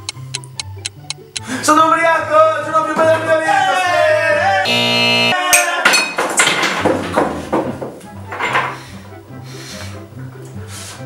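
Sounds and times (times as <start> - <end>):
held musical tone: 0.0 - 1.8, 4.7 - 5.4.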